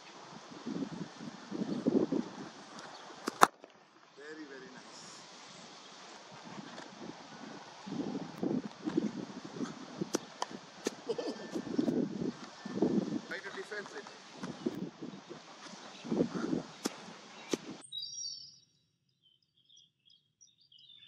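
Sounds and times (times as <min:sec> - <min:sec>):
wind buffeting microphone: 0:00.0 - 0:03.5, 0:04.6 - 0:17.8
sharp cracks: 0:02.7 - 0:03.8, 0:10.1 - 0:11.1, 0:16.8 - 0:17.8
cricket bat striking ball: 0:16.8 - 0:17.8.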